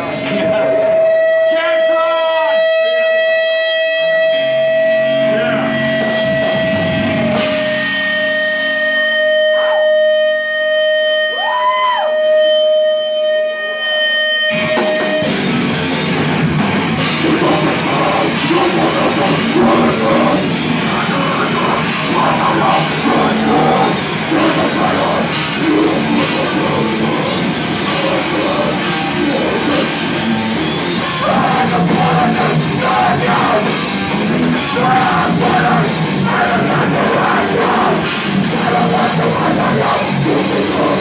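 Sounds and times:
heavy rock band: 0.0 - 41.0.

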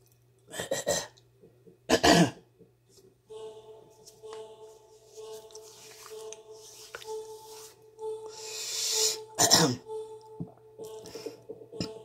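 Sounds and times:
man coughing: 1.9 - 2.4, 9.4 - 9.8.

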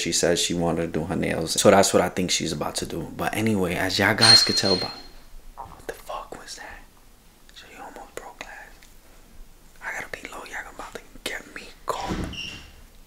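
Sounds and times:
man whispering: 5.6 - 6.9, 7.5 - 8.8, 9.8 - 12.3.

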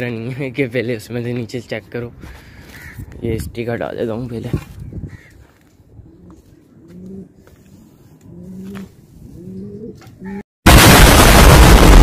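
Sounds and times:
pigeons cooing: 5.1 - 10.4
loud explosion: 10.6 - 12.0.

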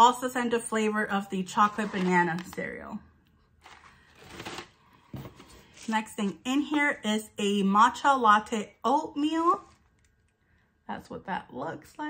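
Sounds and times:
food packaging rustling: 1.6 - 2.6, 3.6 - 5.9.

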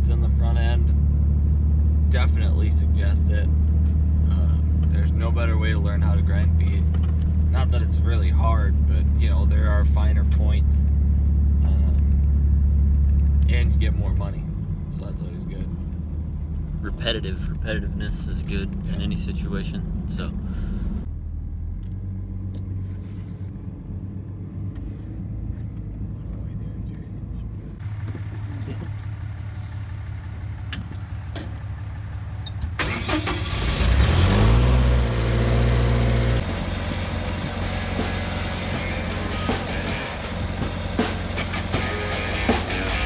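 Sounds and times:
vehicle engine humming: 0.0 - 43.0
welder engine starting: 32.8 - 35.8
background music: 37.8 - 43.0.

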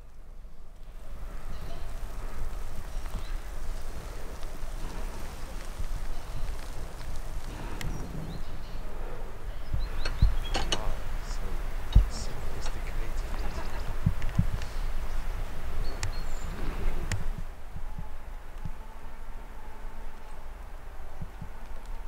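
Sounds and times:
wind on microphone: 0.9 - 19.4.

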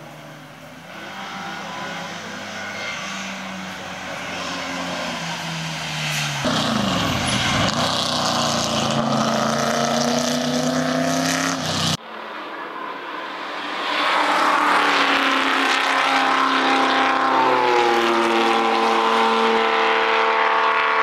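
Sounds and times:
racing car engines accelerating: 0.0 - 21.0.

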